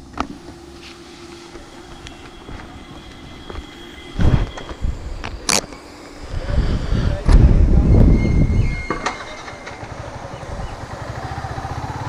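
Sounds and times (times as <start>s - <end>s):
motor vehicle engine: 0.0s - 12.0s.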